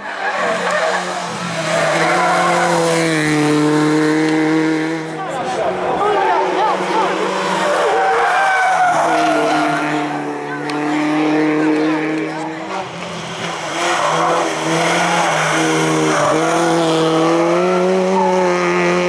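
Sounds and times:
car engine revving: 0:00.0 - 0:19.0
tyres squealing: 0:07.5 - 0:09.9.

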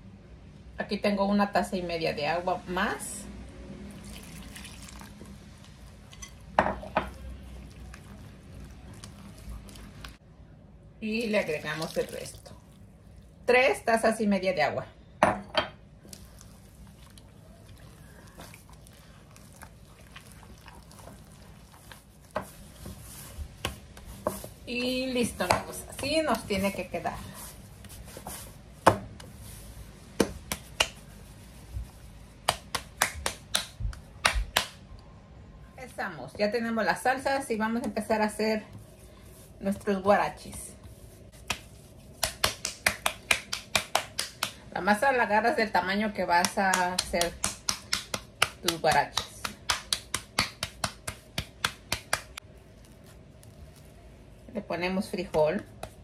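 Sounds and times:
hands slapping dough: 0:18.0 - 0:34.9, 0:37.6 - 0:53.8, 0:54.8 - 0:56.0.

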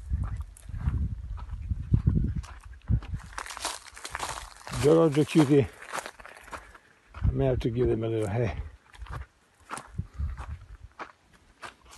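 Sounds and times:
footsteps crunching on straw: 0:02.4 - 0:11.9.

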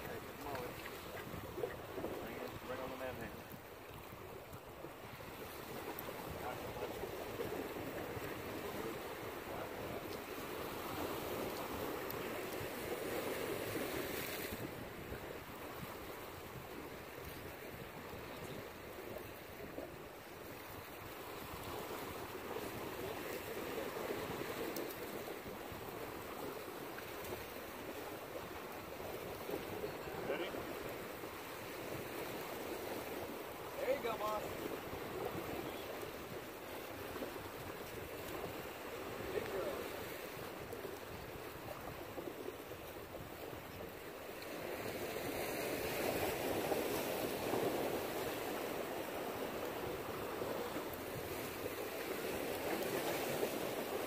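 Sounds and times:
waves washing against rocks: 0:00.0 - 0:54.0
wind buffeting microphone: 0:00.0 - 0:54.0.

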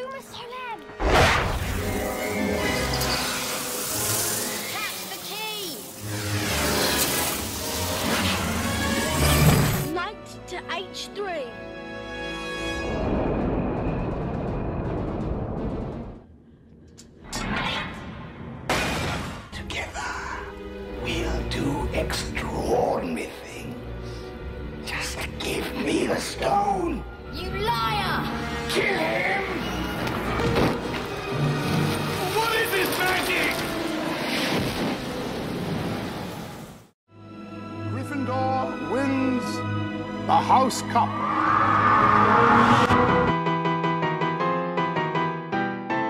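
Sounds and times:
dramatic orchestral music: 0:00.0 - 0:16.1, 0:19.0 - 0:35.9, 0:37.1 - 0:46.0.

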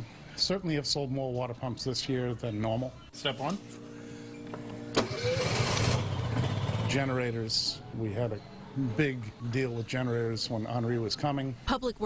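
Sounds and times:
generator engine humming: 0:03.5 - 0:09.1
starter cranking: 0:04.9 - 0:06.9.

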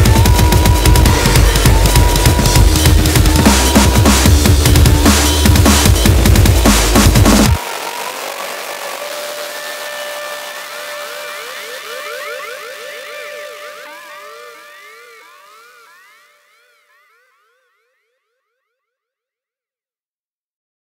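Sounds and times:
held synth tone: 0:00.0 - 0:18.4
siren-like synth sweeping: 0:00.0 - 0:18.6.

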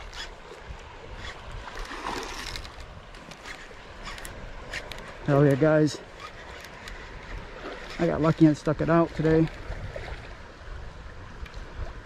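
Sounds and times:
fishing reel cranking: 0:00.0 - 0:00.4, 0:01.1 - 0:08.1
water noise: 0:00.0 - 0:12.0
wind: 0:00.0 - 0:12.0.

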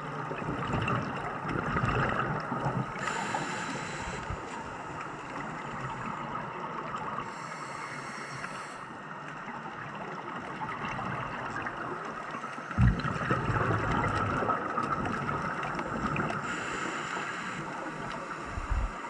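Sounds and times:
rumble of exhaled bubbles: 0:00.0 - 0:07.4, 0:09.4 - 0:19.0
underwater noise: 0:00.0 - 0:19.0
regulator hiss: 0:03.0 - 0:06.0, 0:07.3 - 0:08.9, 0:16.4 - 0:19.0
thump: 0:12.8 - 0:13.1.

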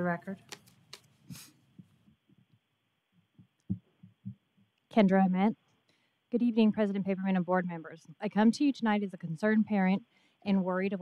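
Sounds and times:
faint hiss: 0:01.1 - 0:01.8
low thumps on microphone: 0:03.4 - 0:04.4.

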